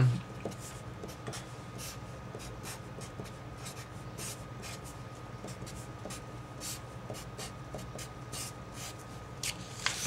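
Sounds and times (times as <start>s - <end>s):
marker writing on paper: 0.4s - 9.0s.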